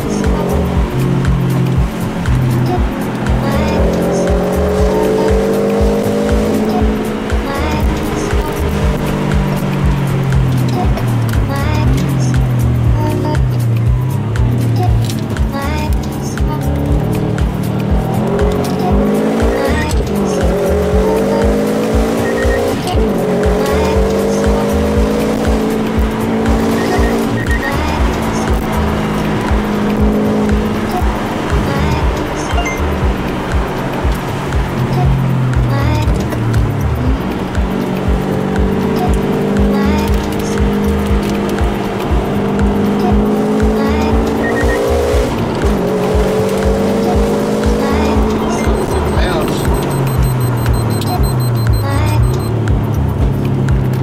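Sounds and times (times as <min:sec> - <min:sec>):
car engine accelerating through gears: 0:00.0 - 0:54.0
music with steady beat: 0:00.0 - 0:54.0.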